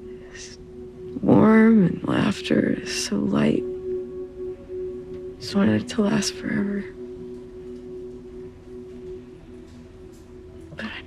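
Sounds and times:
sustained low background score: 0.0 - 11.0.

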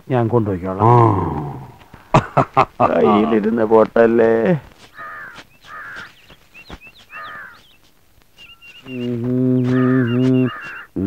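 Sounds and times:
small birds chirping: 0.0 - 11.0
bird cawing: 4.6 - 11.0.

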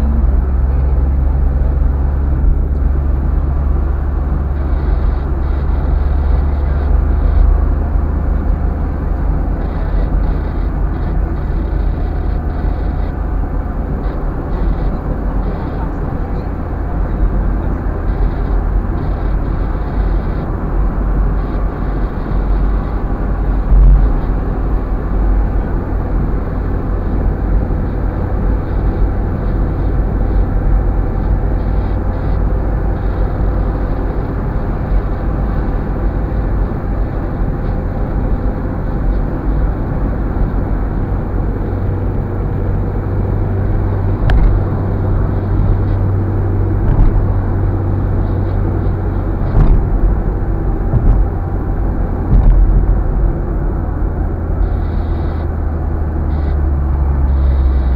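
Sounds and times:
car engine and tyres rumbling: 0.0 - 57.9
thump: 49.5 - 49.9, 50.9 - 51.3, 52.3 - 52.7.

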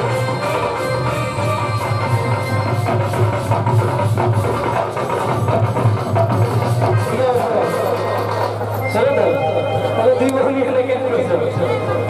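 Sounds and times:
orchestra music through loudspeakers: 0.0 - 12.0
steady drum beat: 1.8 - 8.8.

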